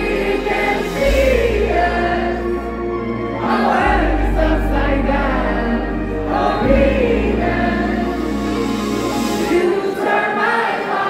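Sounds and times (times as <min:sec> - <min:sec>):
electronic backing with deep bass: 0:00.0 - 0:09.7.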